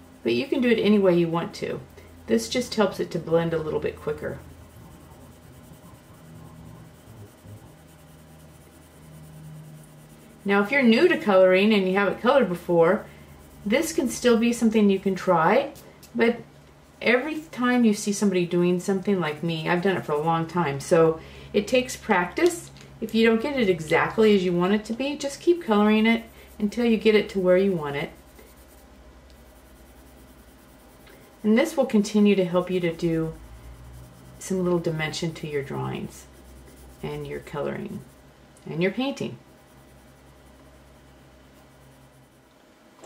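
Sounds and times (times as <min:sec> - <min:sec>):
faint low hum: 0:00.0 - 0:43.0
colored pencil rubbing on paper: 0:00.2 - 0:15.6, 0:17.0 - 0:22.3, 0:23.2 - 0:42.5.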